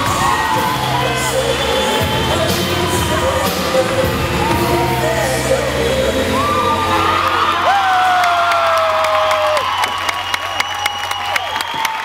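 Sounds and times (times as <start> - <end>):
audience cheering with whoops: 0.0 - 3.5, 6.2 - 12.0
music: 0.0 - 12.0
audience clapping: 7.3 - 12.0.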